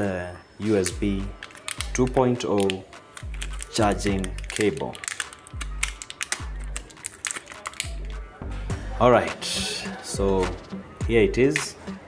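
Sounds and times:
background music with bass beat: 0.9 - 7.0, 7.7 - 12.0
plastic bag crinkling: 1.4 - 2.0, 2.6 - 8.1.

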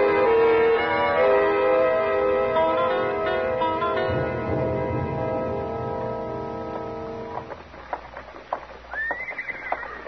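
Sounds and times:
horse hooves clip-clopping: 7.1 - 10.0.

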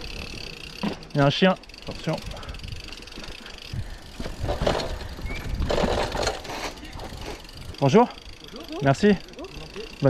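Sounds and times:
bike rattling: 0.0 - 10.0
bike tyres on dirt trail: 0.0 - 10.0.

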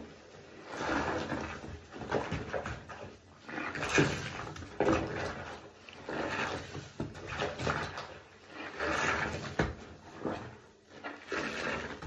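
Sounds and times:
sponge squelching: 0.0 - 12.0.

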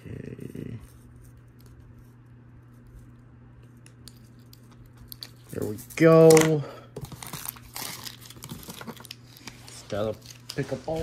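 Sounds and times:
creaky voice hum: 0.0 - 1.0
mini fridge humming: 0.0 - 11.0.

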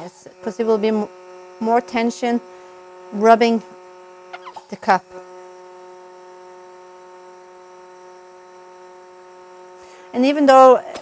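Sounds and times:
vacuum cupping machine humming: 0.0 - 11.0.

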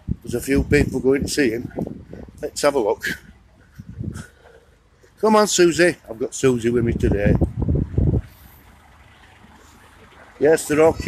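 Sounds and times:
faint car traffic: 0.0 - 11.0.

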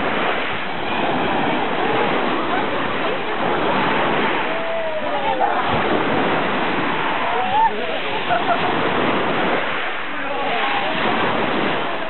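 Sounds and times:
waves washing on pebble shore: 0.0 - 12.0
faint voices: 0.6 - 12.0.

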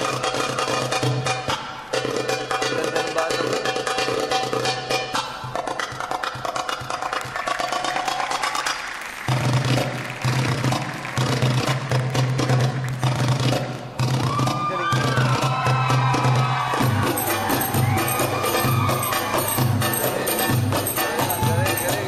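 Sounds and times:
backing music with steady beat: 0.0 - 22.0
hand percussion: 0.0 - 22.0.

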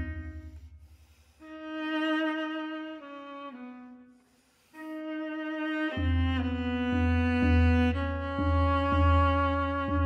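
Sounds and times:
solo viola bowing held notes: 0.0 - 0.8, 1.4 - 10.0.

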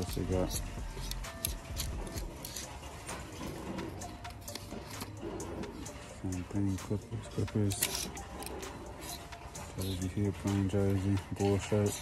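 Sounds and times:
background music: 0.0 - 12.0
clothes hangers clicking on rack: 0.0 - 12.0.

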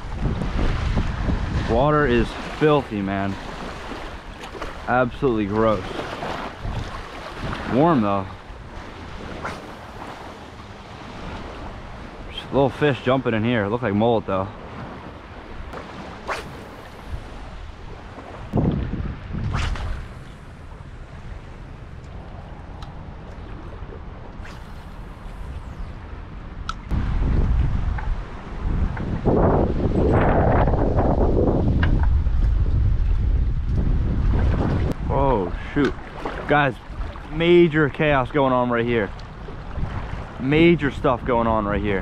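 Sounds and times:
choppy water: 0.0 - 42.0
wind buffeting microphone: 0.0 - 42.0.

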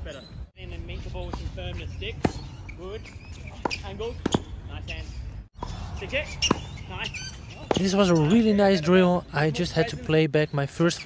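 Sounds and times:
tennis ball hits and bounces: 1.1 - 8.3.

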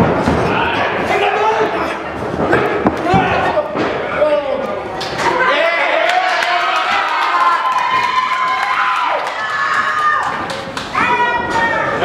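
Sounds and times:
people shouting: 5.2 - 12.0.

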